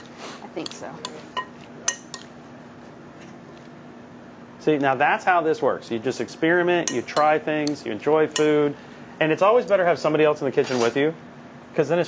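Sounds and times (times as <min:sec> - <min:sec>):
faint steady hum: 0:00.0 - 0:12.0
metal spoon clinking glass bowl: 0:00.6 - 0:02.3, 0:06.8 - 0:08.6.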